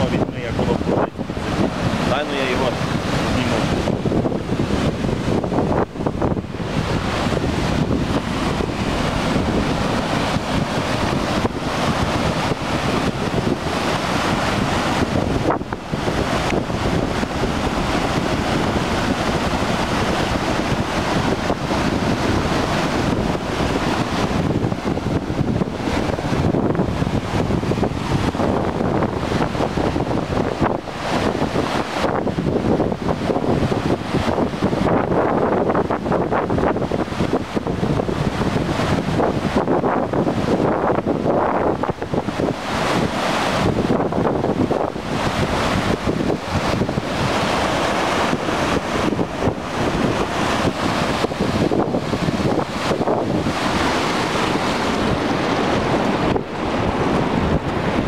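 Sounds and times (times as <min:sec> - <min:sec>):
floodwater rushing: 0:00.0 - 0:58.0
wind buffeting microphone: 0:00.0 - 0:58.0.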